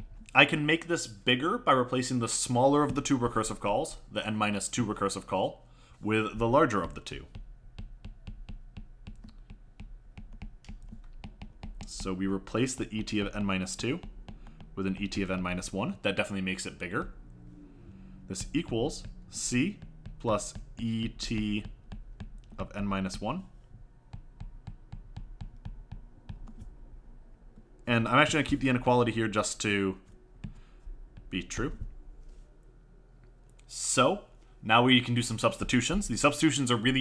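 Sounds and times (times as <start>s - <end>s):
stylus tapping on tablet screen: 6.8s - 15.2s, 18.4s - 23.2s, 24.1s - 26.7s.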